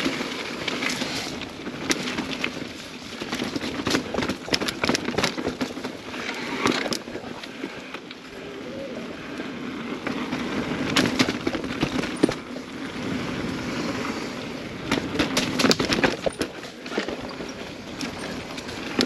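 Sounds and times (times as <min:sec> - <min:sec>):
bike knocking and rattling: 0:00.0 - 0:08.3, 0:09.4 - 0:14.0, 0:14.6 - 0:19.0
mountain bike tyre noise: 0:00.0 - 0:19.0.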